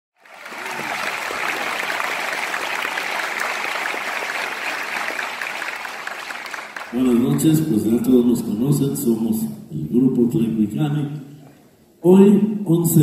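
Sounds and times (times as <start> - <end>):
audience applauding: 0.2 - 7.6.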